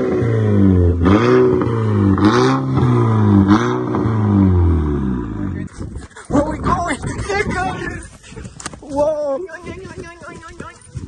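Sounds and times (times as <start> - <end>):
car engine revving: 0.0 - 5.7.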